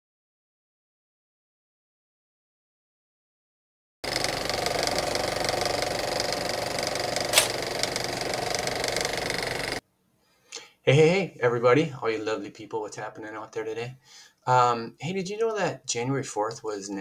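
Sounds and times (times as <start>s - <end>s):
rapid mechanical clatter with whine: 4.1s - 9.8s.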